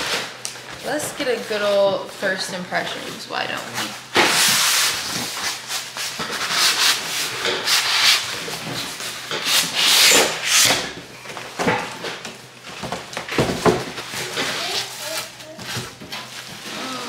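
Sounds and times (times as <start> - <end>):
cardboard rubbing and scraping: 14.0 - 17.0.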